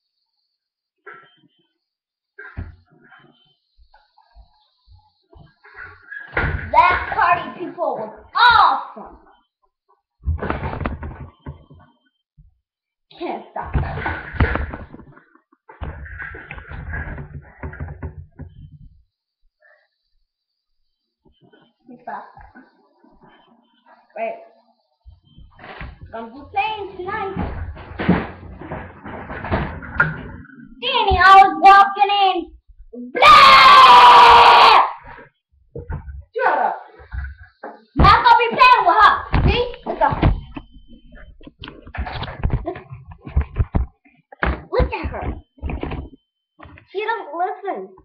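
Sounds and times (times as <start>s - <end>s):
loud held scream: 33.2s - 35.0s
microphone handling rumble and knocks: 35.7s - 36.3s, 39.3s - 46.2s.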